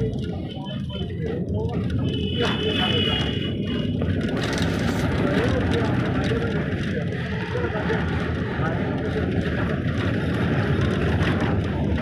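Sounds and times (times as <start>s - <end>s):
faint voices: 0.0s - 12.0s
road noise: 0.0s - 12.0s
vehicle engine rumble: 0.0s - 12.0s.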